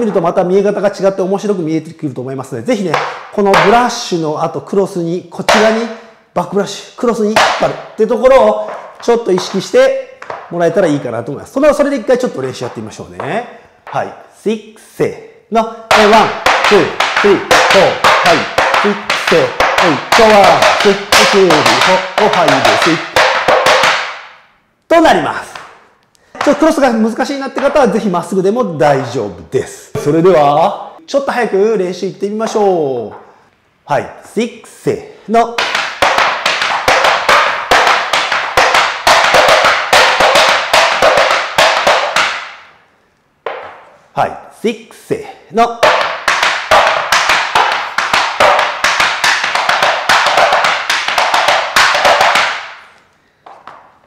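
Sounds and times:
tap shoes on wooden board: 2.9 - 3.8, 5.5 - 5.8, 7.3 - 10.6, 12.6 - 14.0, 15.9 - 24.3, 35.6 - 42.6, 43.4 - 43.9, 45.8 - 53.9.

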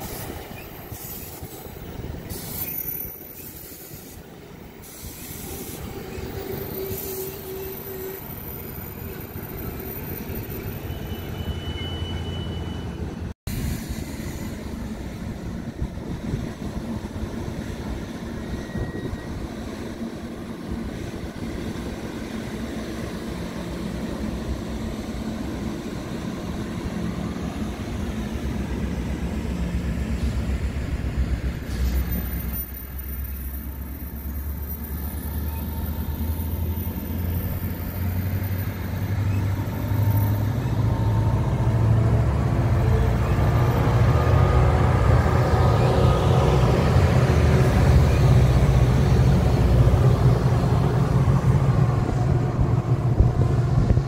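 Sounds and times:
train wheels rumbling on rail: 0.0 - 11.8, 12.8 - 54.0
diesel locomotive engine drone: 0.0 - 54.0.

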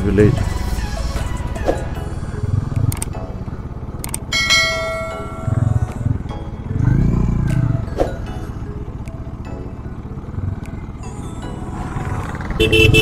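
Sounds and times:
motorcycle engine running: 1.9 - 13.0
sharp clicks: 4.0 - 4.3.

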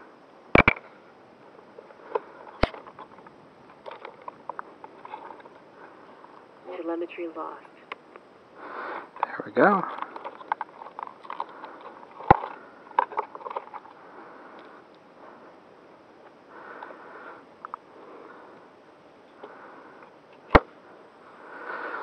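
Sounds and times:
small clicks and rustles: 1.7 - 6.5, 9.1 - 15.1.

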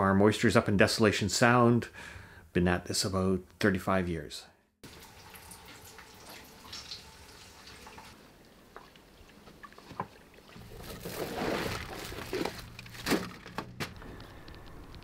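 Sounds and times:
running water: 4.8 - 12.6.

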